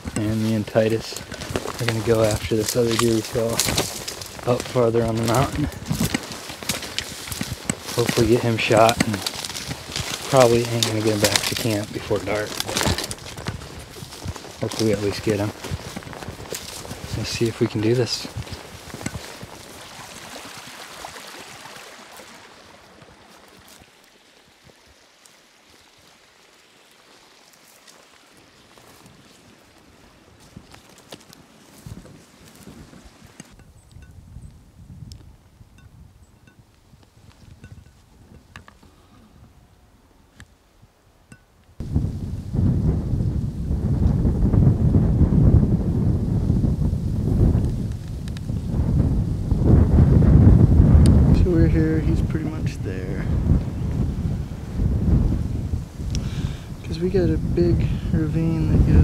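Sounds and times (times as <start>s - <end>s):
wind buffeting microphone: 0.0s - 21.6s, 30.3s - 39.9s, 41.8s - 59.0s
footsteps in dry grass: 0.0s - 34.2s, 36.7s - 39.1s, 41.8s - 59.0s.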